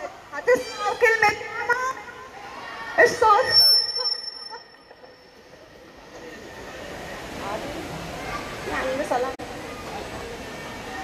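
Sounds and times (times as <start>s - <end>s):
indoor hall background noise: 0.0s - 11.0s
thin steady high tone: 0.3s - 7.4s.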